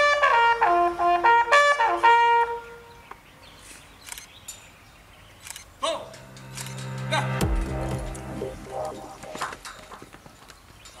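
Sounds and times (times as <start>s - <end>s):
outro jingle: 6.1s - 10.0s.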